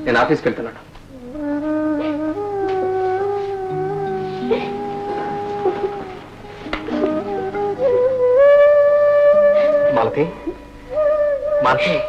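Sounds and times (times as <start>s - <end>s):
lower accompanying notes: 0.0s - 12.0s
held woodwind note: 1.1s - 12.0s.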